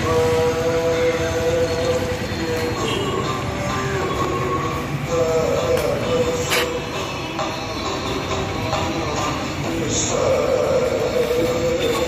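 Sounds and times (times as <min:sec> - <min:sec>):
crowd noise: 0:00.0 - 0:12.0
street traffic noise: 0:00.0 - 0:12.0.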